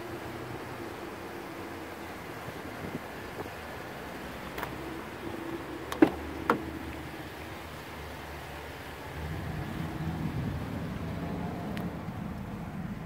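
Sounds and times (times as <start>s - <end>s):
car door handle clicks: 5.9s - 6.8s.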